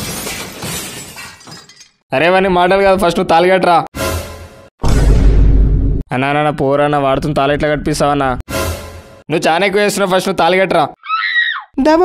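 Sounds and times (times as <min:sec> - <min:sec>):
glass shattering: 0:00.0 - 0:02.0.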